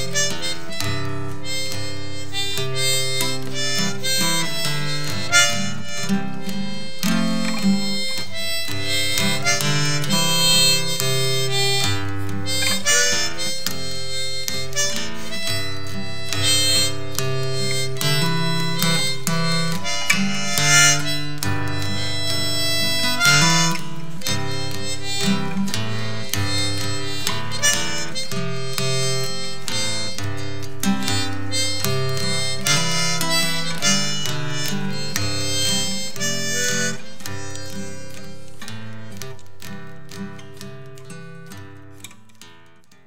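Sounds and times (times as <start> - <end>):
harmonica melody: 0.0 - 42.8
acoustic guitar picking: 0.0 - 43.0.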